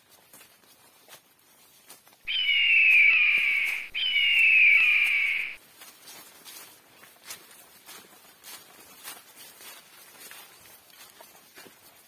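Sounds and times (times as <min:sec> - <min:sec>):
steps on leaf litter: 0:00.0 - 0:12.0
animal calls from canopy: 0:02.3 - 0:05.6.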